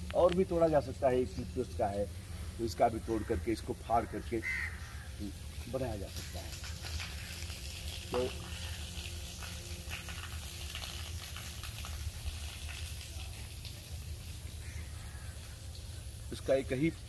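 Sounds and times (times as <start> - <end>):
constant low rumble: 0.0 - 17.0
light rain pattering on leaves: 0.0 - 17.0.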